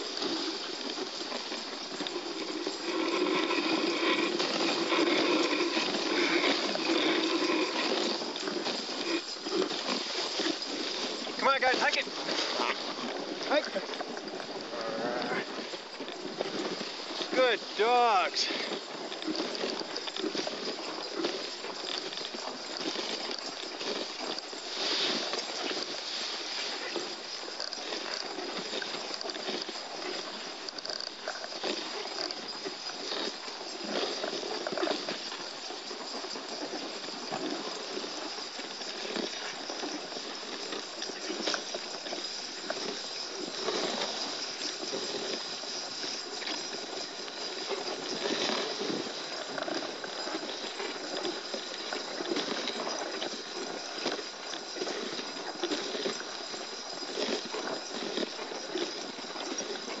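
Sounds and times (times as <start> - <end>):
dogs' feet: 0.0 - 60.0
sled knocks and rattles: 0.0 - 60.0
sled runners hissing on snow: 0.0 - 60.0.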